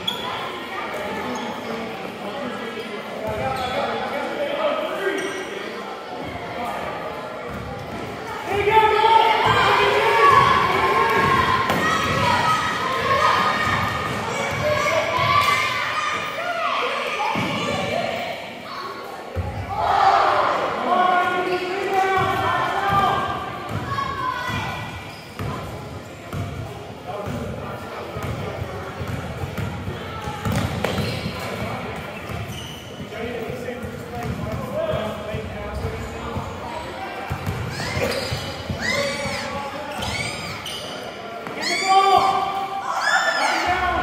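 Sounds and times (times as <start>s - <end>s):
sneaker squeaks on court: 0.0s - 0.5s, 3.2s - 3.9s, 30.4s - 33.1s, 35.8s - 41.8s.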